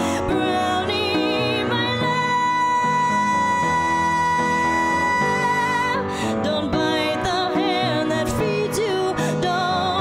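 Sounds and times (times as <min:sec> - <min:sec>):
upright piano chords: 0:00.0 - 0:10.0.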